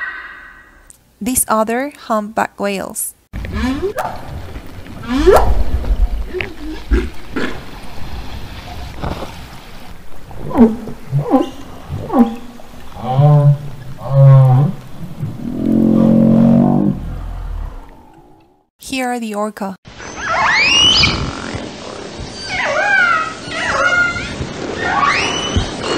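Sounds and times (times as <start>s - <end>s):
low underwater rumble: 3.5s - 18.7s
humpback whale calls: 10.1s - 18.6s.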